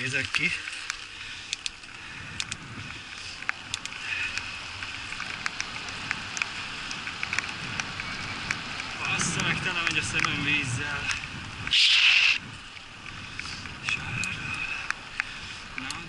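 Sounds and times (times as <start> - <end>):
bicycle tyres hissing on wet road: 0.0 - 16.0
raindrops ticking on camera: 0.0 - 16.0.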